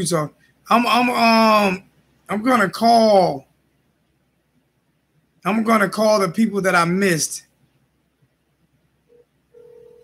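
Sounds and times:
short phone beep: 9.1 - 10.0
telephone ringback tone: 9.1 - 10.0.

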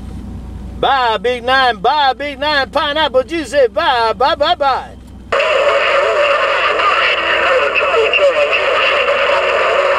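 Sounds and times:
garbled radio voice: 1.5 - 9.9
loud radio static: 5.3 - 9.9.

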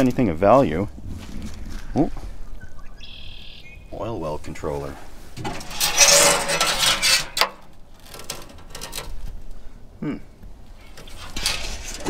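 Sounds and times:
metal lid clanking: 5.4 - 9.2
metal scraping on metal: 5.4 - 9.4, 10.8 - 12.0.

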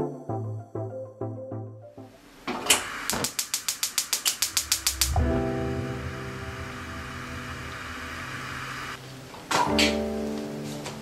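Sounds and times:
gas burner flame: 2.5 - 9.3
gas stove igniter clicking: 2.7 - 5.2.

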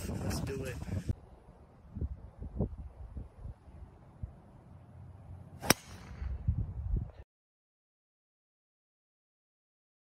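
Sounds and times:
golf club striking ball: 5.6 - 6.3.

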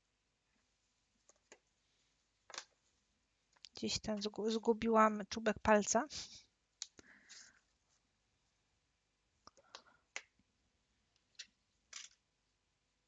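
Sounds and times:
faint scattered clicks: 9.4 - 10.3.

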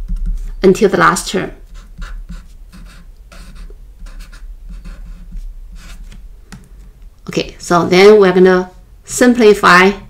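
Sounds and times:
pen scratching on paper: 1.7 - 6.2.

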